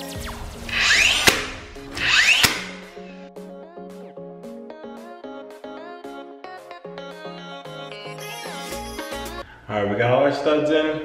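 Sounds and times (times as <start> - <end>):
nail gun firing: 0.8 - 3.0.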